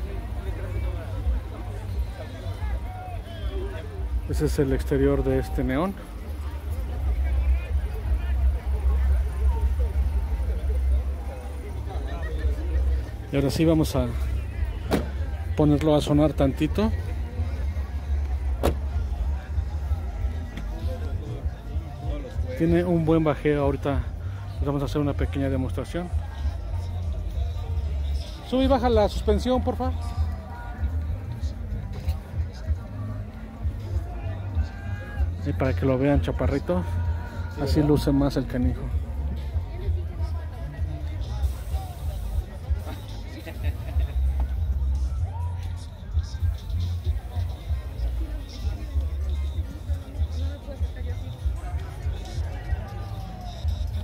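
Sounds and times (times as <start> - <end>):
crowd chatter: 0.0 - 54.0
bass-heavy music from subwoofers: 11.8 - 54.0.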